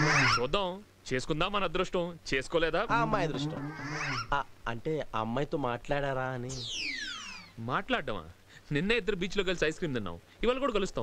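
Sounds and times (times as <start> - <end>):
man talking: 0.0 - 6.7.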